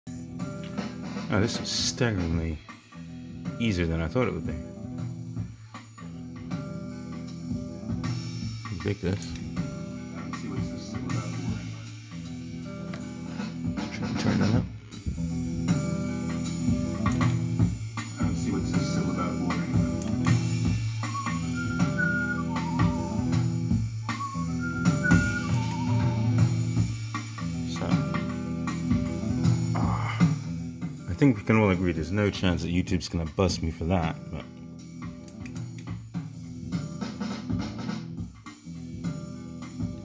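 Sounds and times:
guitar and drums loop: 0:00.1 - 0:40.0
short whistled notes: 0:21.0 - 0:26.6.

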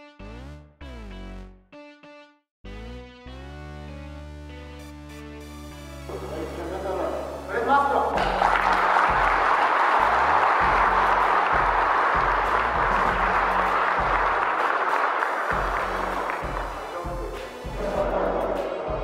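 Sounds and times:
music with deep bass pulse: 0:00.0 - 0:01.6, 0:02.7 - 0:14.4, 0:15.5 - 0:19.0
people applauding: 0:08.1 - 0:17.4.

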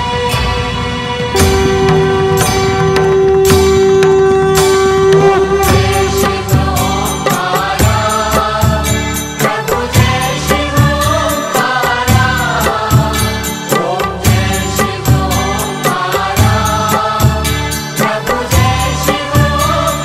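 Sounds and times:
steady drum beat: 0:01.3 - 0:20.0
chanted vocals: 0:01.4 - 0:20.0.

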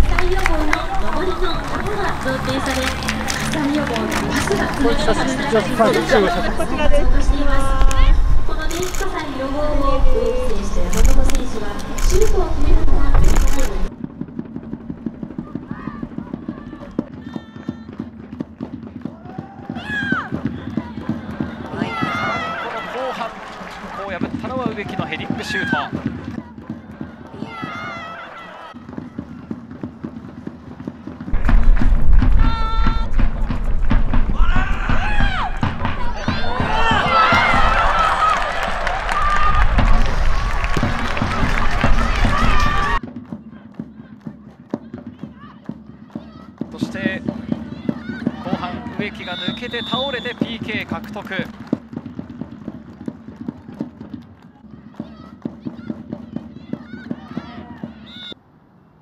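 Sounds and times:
players shouting and celebrating: 0:00.0 - 0:13.9, 0:15.4 - 0:18.1, 0:19.1 - 0:29.6, 0:31.3 - 0:51.6, 0:54.6 - 0:58.4
wind rumbling on microphone: 0:06.5 - 0:14.0, 0:31.3 - 0:43.0.

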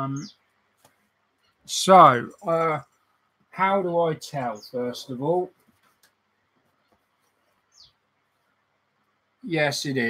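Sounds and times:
faint high chirp: 0:00.0 - 0:00.5, 0:07.6 - 0:08.0.

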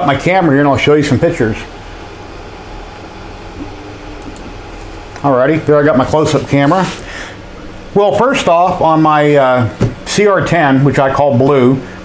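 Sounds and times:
room noise hiss and hum: 0:00.0 - 0:12.0.

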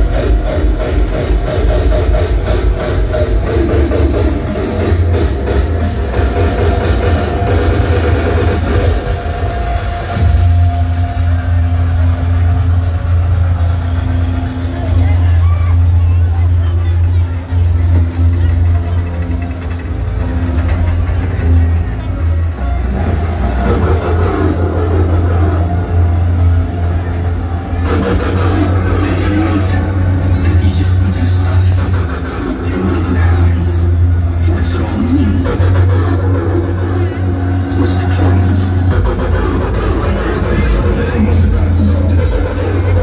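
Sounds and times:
loud bass-heavy music: 0:00.0 - 0:43.0
low engine rumble: 0:00.0 - 0:43.0.

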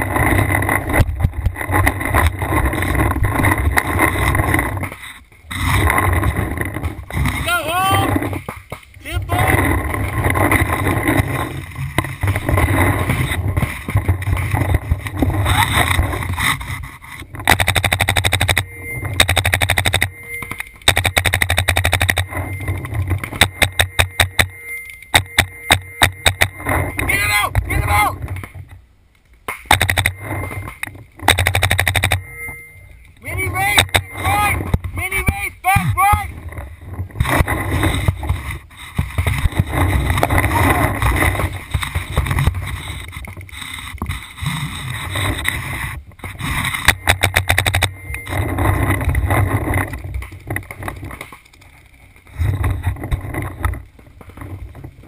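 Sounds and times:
paintball markers firing: 0:29.5 - 0:30.1.

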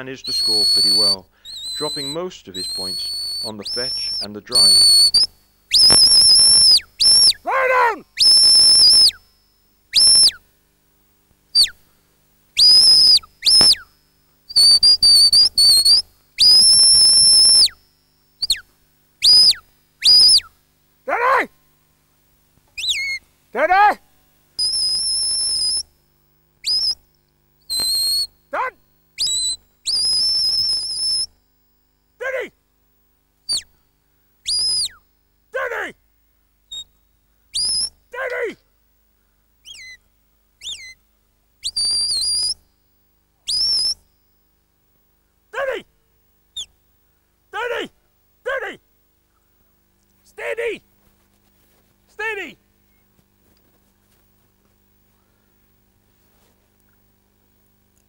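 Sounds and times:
shrill whistle blasts: 0:00.0 - 0:10.4, 0:11.6 - 0:11.8, 0:12.6 - 0:20.6, 0:22.8 - 0:24.0, 0:24.6 - 0:25.9, 0:26.6 - 0:27.0, 0:27.7 - 0:31.3, 0:33.5 - 0:33.7, 0:34.4 - 0:35.1, 0:36.7 - 0:38.0, 0:39.6 - 0:40.0, 0:40.6 - 0:41.0, 0:41.6 - 0:42.8, 0:43.5 - 0:44.3, 0:46.6 - 0:46.8
whistle notes sliding down: 0:00.2 - 0:07.4, 0:08.2 - 0:09.2, 0:10.0 - 0:10.4, 0:12.6 - 0:13.9, 0:14.5 - 0:17.8, 0:18.4 - 0:18.6, 0:19.2 - 0:20.5, 0:22.8 - 0:23.2, 0:24.6 - 0:25.8, 0:26.6 - 0:27.0, 0:27.7 - 0:28.3, 0:29.2 - 0:31.3, 0:33.5 - 0:33.7, 0:40.6 - 0:41.0, 0:41.6 - 0:42.6, 0:43.5 - 0:44.0.

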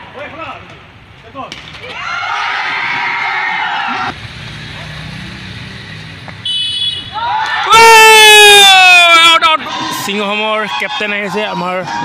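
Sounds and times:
spectators shouting and cheering: 0:01.8 - 0:05.2, 0:07.0 - 0:12.0.

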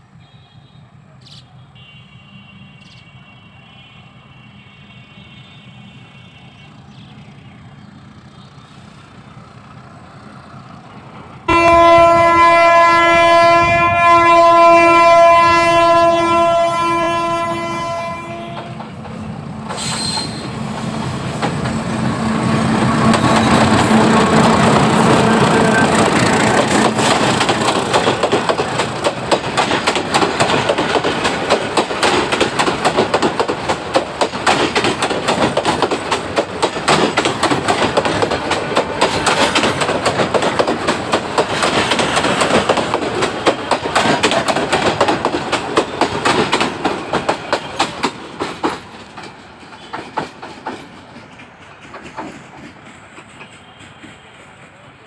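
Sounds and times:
locomotive horn blast: 0:01.7 - 0:07.7, 0:11.5 - 0:18.9, 0:22.2 - 0:27.2
train rumble: 0:04.4 - 0:55.0
train wheels clattering over rail joints: 0:18.4 - 0:54.3.

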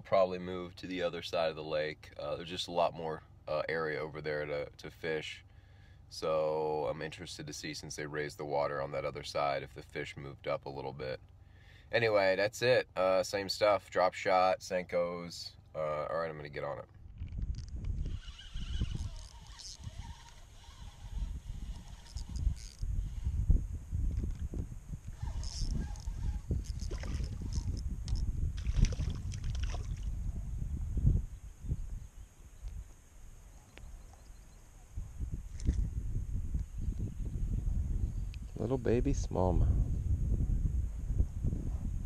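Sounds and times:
steady low rumble: 0:21.1 - 0:42.0
light water splash: 0:26.6 - 0:30.2.

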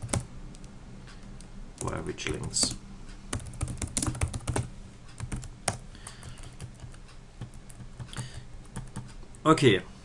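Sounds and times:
keyboard typing: 0:00.0 - 0:09.2.

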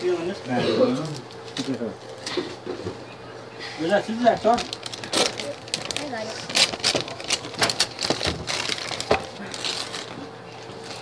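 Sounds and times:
wrapping paper crinkling and tearing: 0:01.0 - 0:02.2, 0:04.2 - 0:11.0.

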